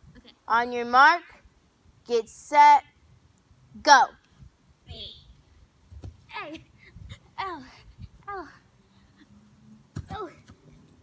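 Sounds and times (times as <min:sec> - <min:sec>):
girl exclaiming: 0:06.3 - 0:08.6.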